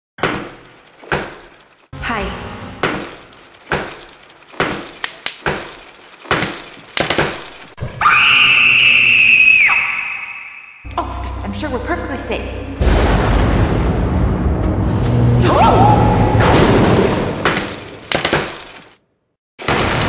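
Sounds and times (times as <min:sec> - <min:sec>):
loud high scream: 0:08.0 - 0:10.8, 0:15.4 - 0:16.4
sharp ringing impact hits: 0:10.9 - 0:15.4.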